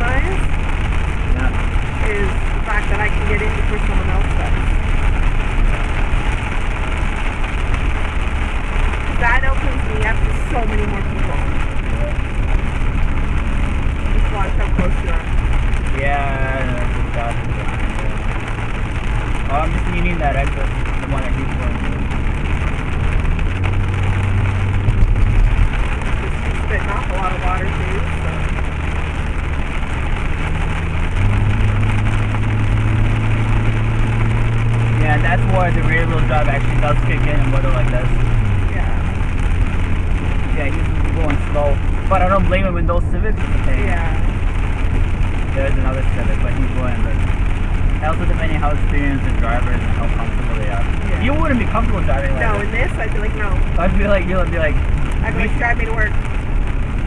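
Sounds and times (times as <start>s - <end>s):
car engine and tyre drone: 0.0s - 57.0s
water hissing off wet road: 0.0s - 57.0s.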